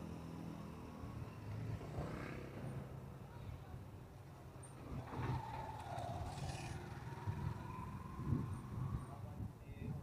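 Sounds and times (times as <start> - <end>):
motorcycle engine rumbling: 4.7 - 9.4.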